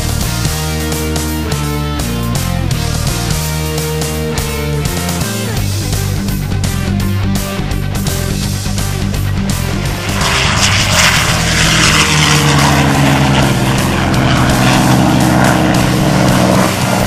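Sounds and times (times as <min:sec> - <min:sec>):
propeller plane engine fly-by: 0:00.0 - 0:17.0
rock music: 0:00.0 - 0:17.0.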